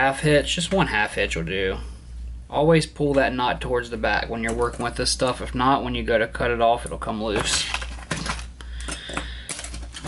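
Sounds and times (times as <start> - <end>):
small tools clicking and tapping: 8.1 - 10.0.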